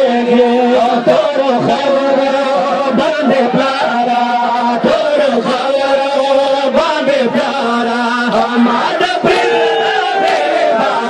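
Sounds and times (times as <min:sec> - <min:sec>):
men chanting a lament: 0:00.0 - 0:11.0.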